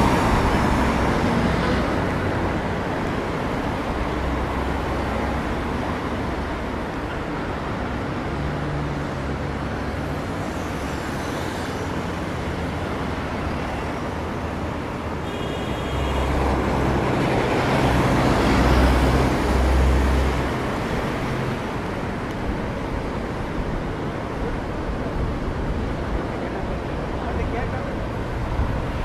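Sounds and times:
road traffic passing: 0.0s - 29.0s.

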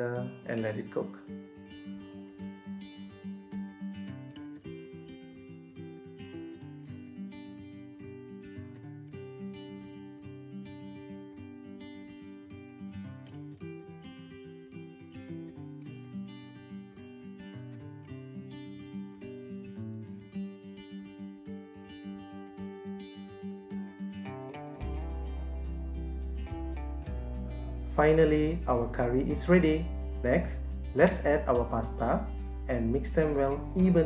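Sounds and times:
acoustic guitar music: 0.0s - 34.0s.

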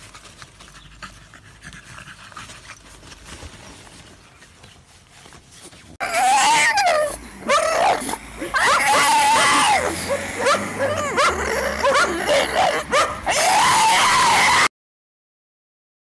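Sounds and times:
dog howling: 6.0s - 14.7s.

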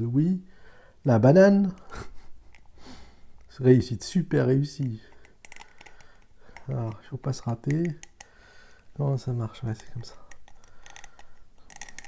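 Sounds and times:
plastic toy parts clicking: 4.8s - 12.0s.

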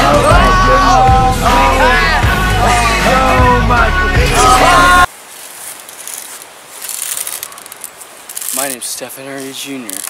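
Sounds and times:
steady hiss: 5.1s - 10.0s
rifle rattling and clicking: 5.9s - 9.0s, 9.6s - 10.0s.

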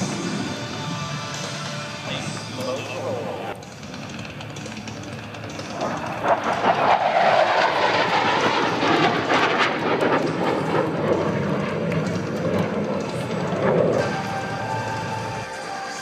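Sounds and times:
jet engine low pass: 0.0s - 16.0s.

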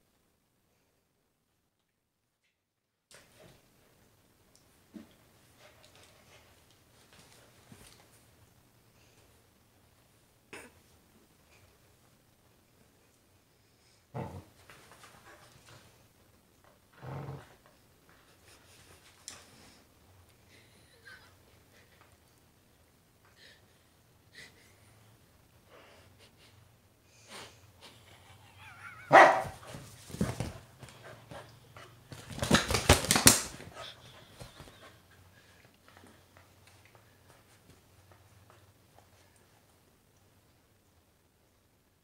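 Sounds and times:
dog growling: 14.1s - 14.5s, 17.0s - 17.6s
dog barking: 29.1s - 29.6s
dog thrashing a stuffed toy: 32.1s - 33.8s.

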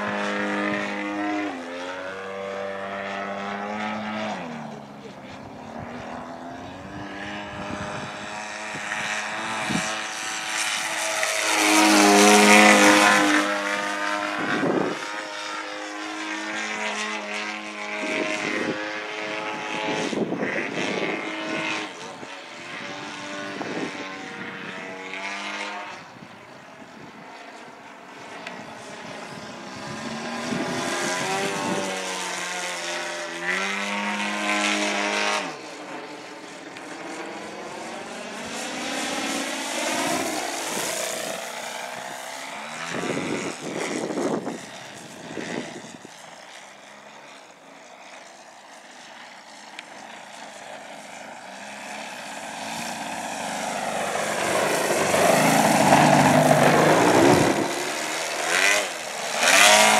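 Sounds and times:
model plane propeller engine: 0.0s - 59.9s.

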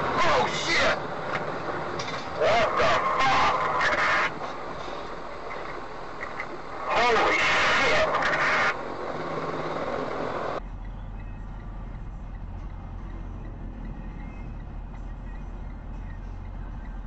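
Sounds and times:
wind and road hiss: 0.0s - 10.6s
truck engine drone: 0.0s - 17.0s.

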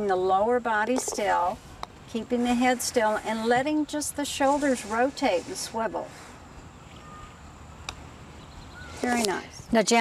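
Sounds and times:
quiet outdoor background: 0.0s - 10.0s
putter striking golf ball: 0.9s - 1.4s.

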